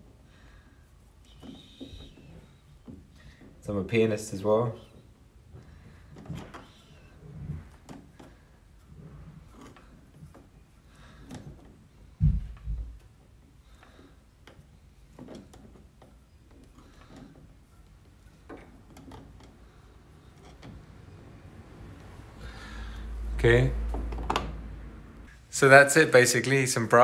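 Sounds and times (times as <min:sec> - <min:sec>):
dull thump: 0:12.2 - 0:13.0.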